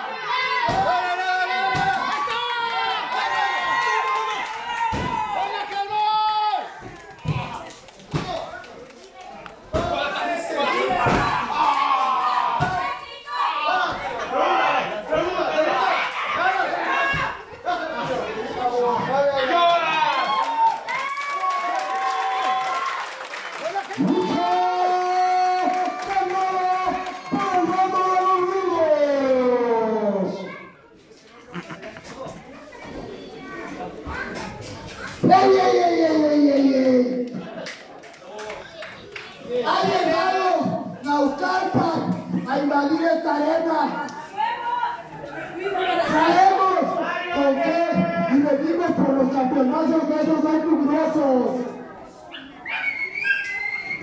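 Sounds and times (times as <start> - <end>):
spectators whistling: 52.6 - 54.0.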